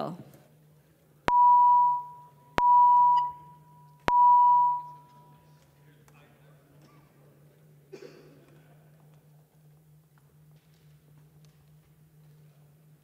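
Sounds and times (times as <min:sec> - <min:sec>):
electronic beeps: 0:01.3 - 0:05.2.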